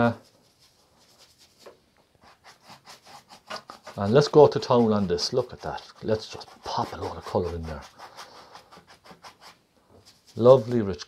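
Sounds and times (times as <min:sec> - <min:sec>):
brush rubbing oil paint: 0:00.0 - 0:11.0.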